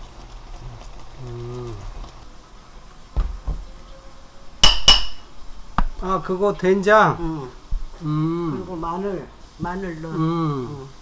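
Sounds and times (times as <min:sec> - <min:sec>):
metal spoon knocking ceramic bowl: 0:04.6 - 0:05.2.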